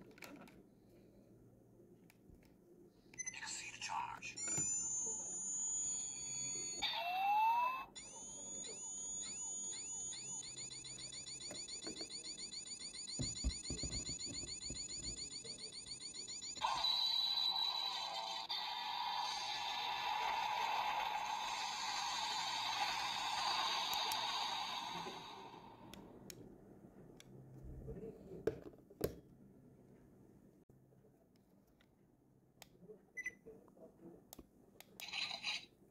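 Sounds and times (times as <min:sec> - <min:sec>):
falling electronic chirps: 0:04.4 - 0:18.6.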